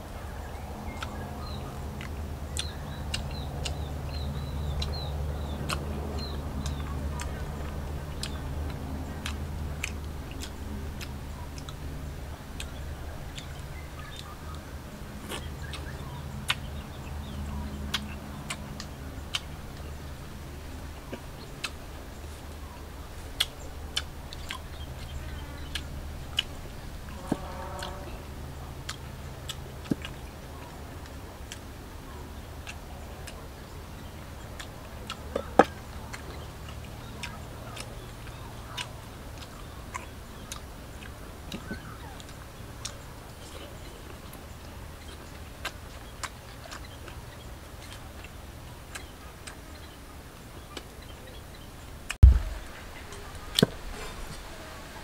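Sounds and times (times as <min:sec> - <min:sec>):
steady low hum: 0:00.0 - 0:55.0
sharp mouth clicks: 0:00.9 - 0:12.0, 0:15.2 - 0:20.0
person chewing: 0:02.0 - 0:12.0, 0:23.2 - 0:28.1, 0:34.5 - 0:44.2.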